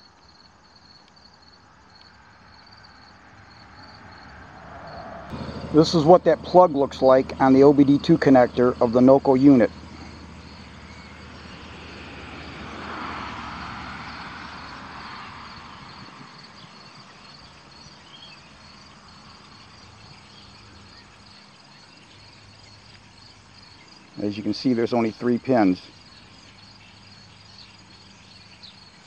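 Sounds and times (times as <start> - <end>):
crickets chirping: 0.0 - 29.0
vehicle passing: 2.0 - 29.0.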